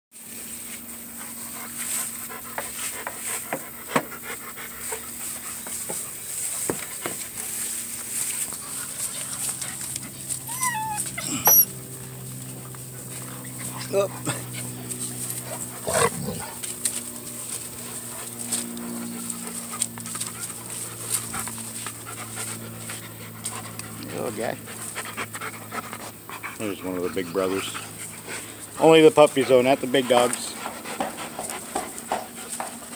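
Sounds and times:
puppy whimpering: 10.4s - 11.8s.

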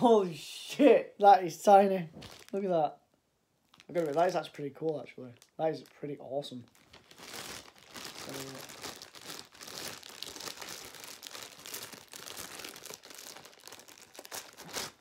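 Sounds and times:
plastic bag crinkling: 2.2s - 2.7s, 3.7s - 15.0s.

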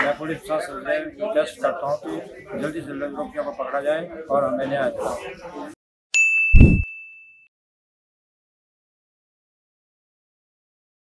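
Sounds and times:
bright ringing ding: 6.2s - 7.4s
short deep boom: 6.6s - 6.8s.

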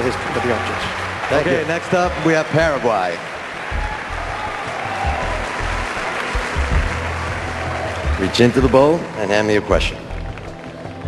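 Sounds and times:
background music with low bass: 0.0s - 11.0s
large audience applauding: 0.0s - 11.0s.

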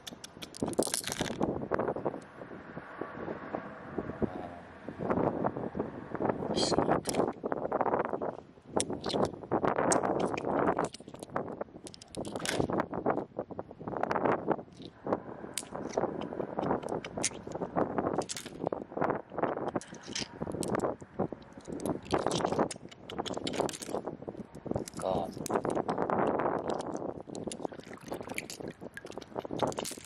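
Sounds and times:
pebbles knocking together: 0.0s - 1.4s, 9.9s - 12.7s, 18.2s - 18.7s, 19.4s - 20.8s, 21.6s - 24.0s, 24.6s - 30.0s.

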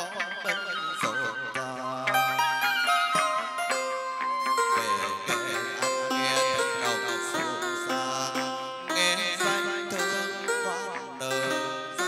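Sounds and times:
plucked lute with pitch bends: 0.0s - 12.0s.

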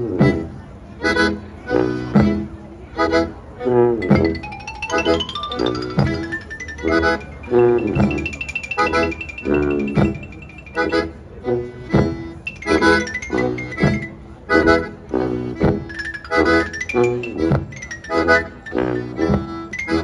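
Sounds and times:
accordion: 0.0s - 20.0s
sousaphone: 4.0s - 11.2s, 15.9s - 19.0s
marimba: 4.0s - 20.0s.

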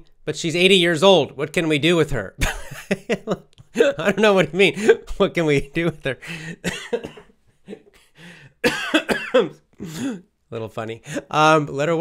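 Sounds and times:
man laughing: 2.4s - 8.1s
man coughing: 3.7s - 5.3s, 6.2s - 10.3s.

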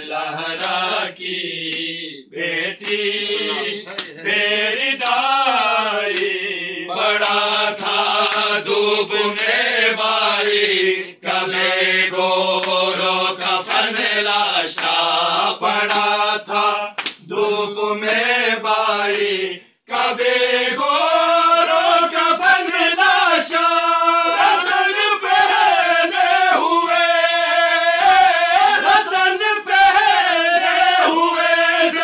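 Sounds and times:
men chanting a lament: 0.0s - 32.0s.

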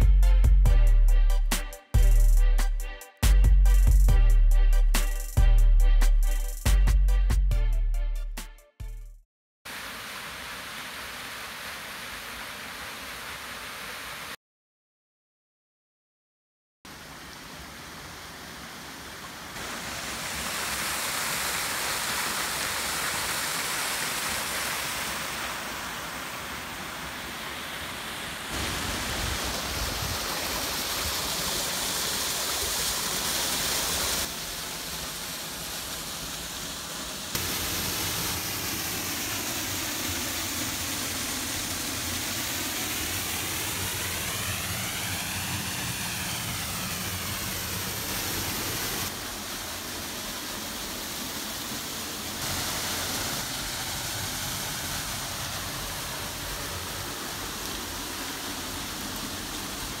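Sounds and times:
waterfall rushing over rocks: 9.7s - 14.4s, 16.9s - 60.0s.

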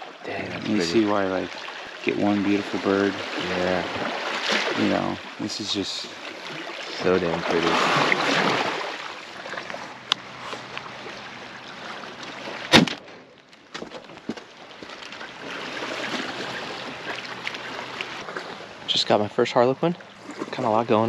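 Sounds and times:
sea water washing on rocks: 6.5s - 9.2s
shotgun shot: 12.7s - 13.0s.

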